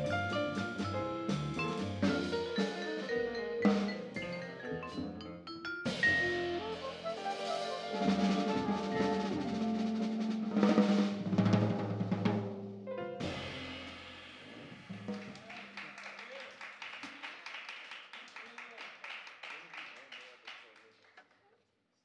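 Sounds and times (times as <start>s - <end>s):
live jazz band playing: 0.0s - 14.0s
drum roll and cymbal crashes: 5.9s - 12.6s, 13.2s - 15.8s
audience clapping: 14.9s - 21.5s.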